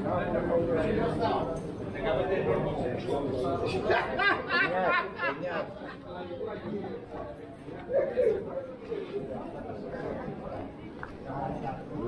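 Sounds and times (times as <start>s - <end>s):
overlapping chatter: 0.0s - 12.0s.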